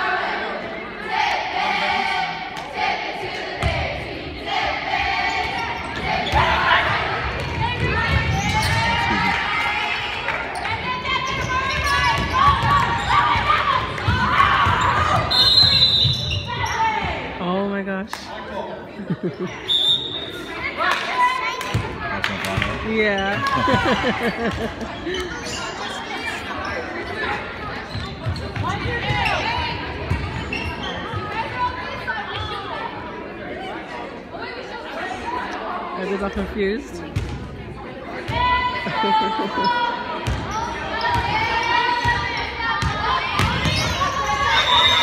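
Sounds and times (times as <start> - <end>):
voices echoing in a gym: 0.0 - 45.0.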